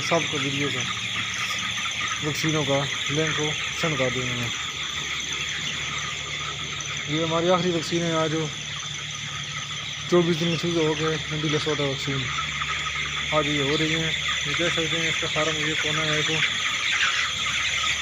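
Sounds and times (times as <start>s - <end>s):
chicks chirping: 0.0s - 18.0s.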